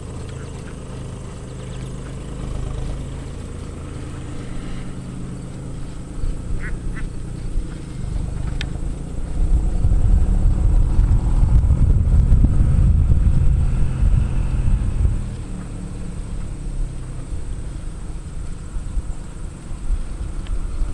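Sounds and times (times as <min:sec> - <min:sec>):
short pitched calls: 0:00.0 - 0:09.1
wind buffeting microphone: 0:00.0 - 0:20.9.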